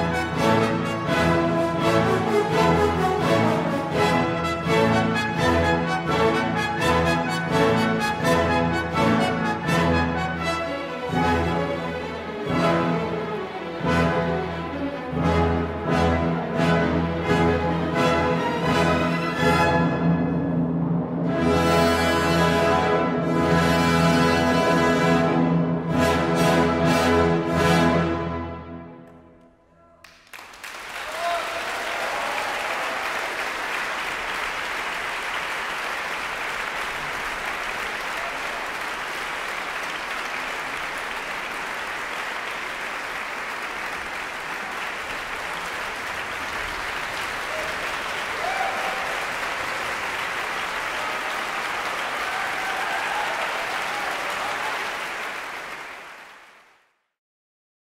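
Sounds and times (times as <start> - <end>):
audience applauding: 30.0 - 56.9.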